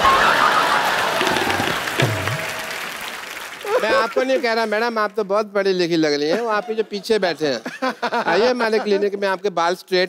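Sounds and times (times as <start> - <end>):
studio audience applauding: 0.0 - 5.8.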